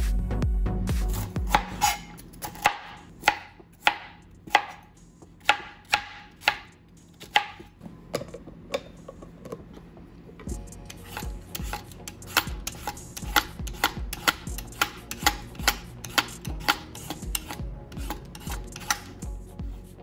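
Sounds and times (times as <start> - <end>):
intro music: 0.0 - 1.9, 10.5 - 20.0
knife chopping on plastic board: 1.5 - 4.8, 5.4 - 8.9, 11.1 - 19.1.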